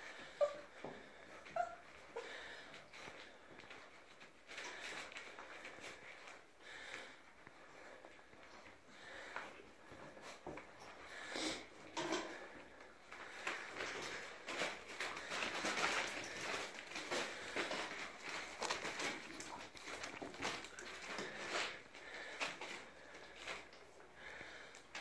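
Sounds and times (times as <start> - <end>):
puppies chewing and sniffing: 0.0 - 25.0.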